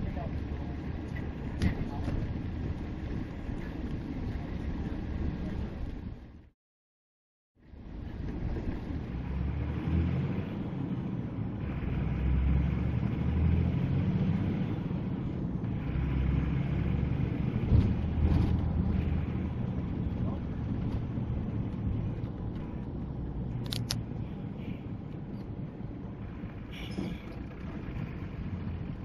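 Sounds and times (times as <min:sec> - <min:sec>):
vehicle engine and road noise: 0:00.0 - 0:06.6, 0:07.6 - 0:29.0.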